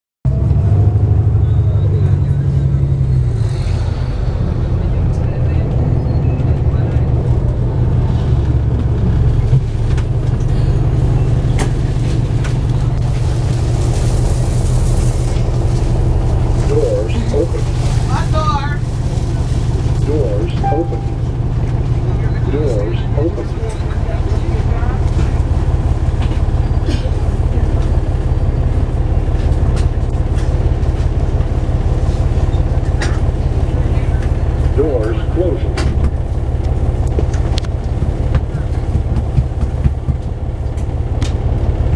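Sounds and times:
bus engine rumbling: 0:00.2 - 0:41.9
voices: 0:01.2 - 0:40.8.

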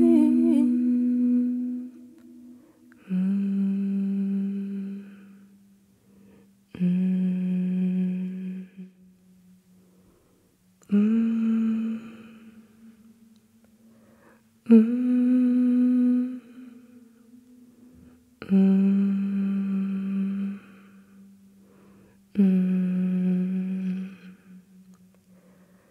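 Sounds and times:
person humming low note: 0:00.0 - 0:05.6, 0:06.7 - 0:09.7, 0:10.8 - 0:13.4, 0:14.6 - 0:21.4, 0:22.3 - 0:25.1
faint hum: 0:00.0 - 0:25.9.

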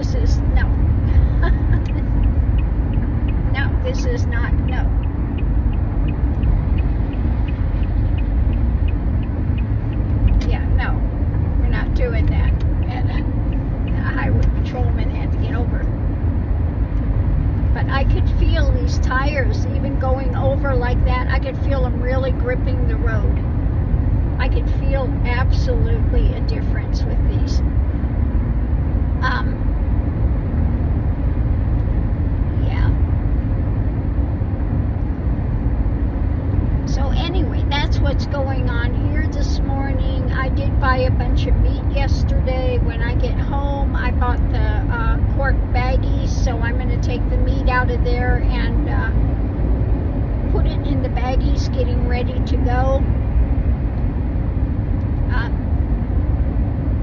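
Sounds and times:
car cabin road and engine rumble: 0:00.0 - 0:57.0.

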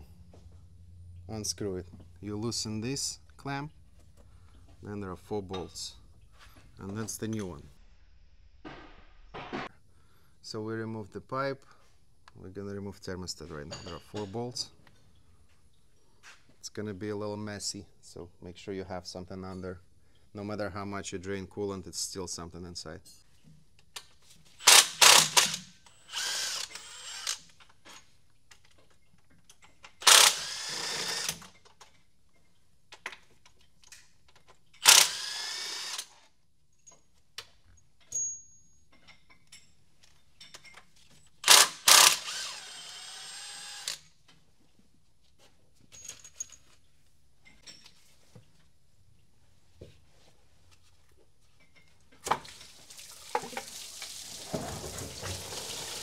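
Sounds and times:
power tool spinning in bursts: 0:24.6 - 0:27.5, 0:30.0 - 0:31.4, 0:34.8 - 0:36.2, 0:41.4 - 0:44.1.

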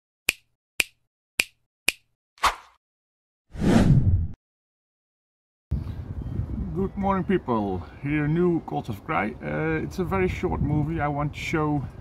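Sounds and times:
sharp snaps: 0:00.3 - 0:02.8.

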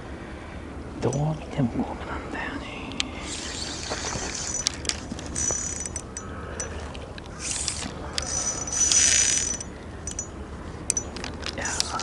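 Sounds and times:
spinning reel mechanism: 0:03.2 - 0:06.2, 0:07.4 - 0:10.3.

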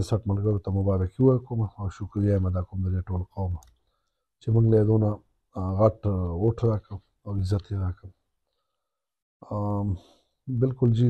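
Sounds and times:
man speaking: 0:00.0 - 0:03.7, 0:04.4 - 0:08.1, 0:09.4 - 0:11.0.

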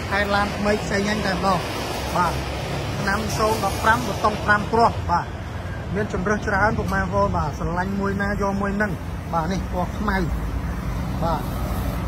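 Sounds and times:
man talking: 0:00.0 - 0:11.8.

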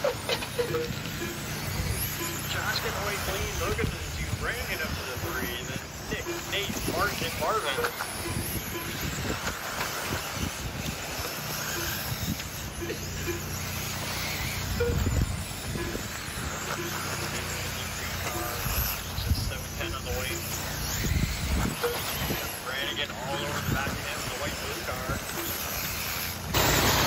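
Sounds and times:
faint voices: 0:00.0 - 0:26.5
radio-controlled cars racing: 0:00.0 - 0:27.0
wind on microphone: 0:03.0 - 0:12.7, 0:14.6 - 0:16.6, 0:17.9 - 0:20.0, 0:20.9 - 0:22.6, 0:23.3 - 0:25.4.

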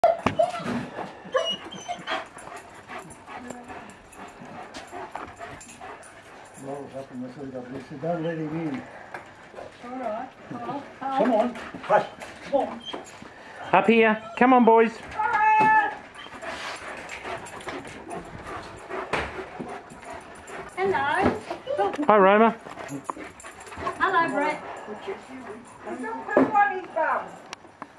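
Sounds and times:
dog yipping and whining: 0:00.0 - 0:02.5, 0:11.9 - 0:16.9
dogs panting: 0:00.0 - 0:27.9.

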